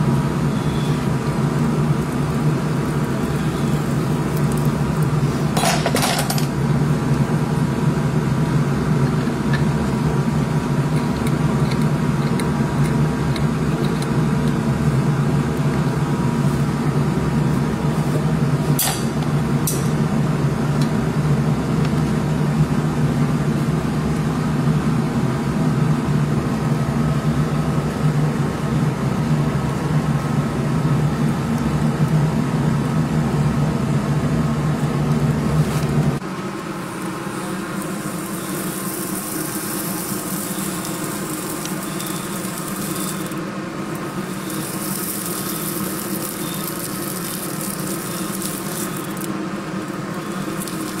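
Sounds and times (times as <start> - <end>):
low mechanical hum: 0.0 - 51.0
hot horseshoe sizzling on hoof: 36.7 - 51.0.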